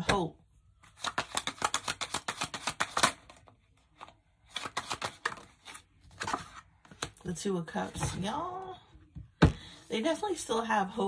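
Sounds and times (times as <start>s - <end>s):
cards being shuffled: 0.8s - 7.2s.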